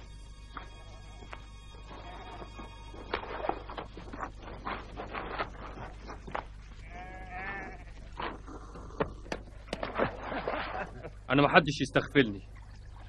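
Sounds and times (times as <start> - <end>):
sheep bleating: 0.9 - 2.7, 6.8 - 8.1.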